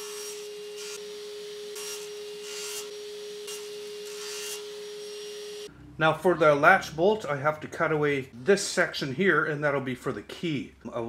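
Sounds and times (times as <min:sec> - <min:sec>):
saw cutting wood: 0:00.0 - 0:05.7
table saw humming: 0:00.0 - 0:05.7.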